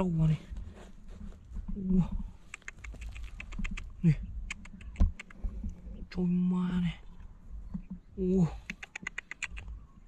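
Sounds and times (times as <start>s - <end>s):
hands scraping stony soil: 0.0s - 6.0s.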